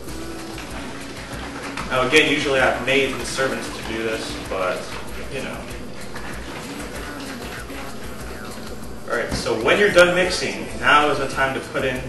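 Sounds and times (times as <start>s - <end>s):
liquid sloshing in plastic bottle: 0.0s - 11.3s
background music: 0.0s - 12.0s.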